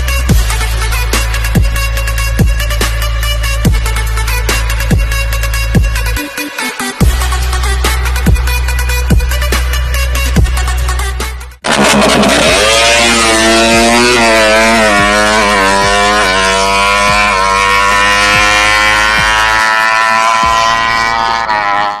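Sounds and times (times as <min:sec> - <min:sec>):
motorcycle accelerating through gears: 0:11.6 - 0:22.0.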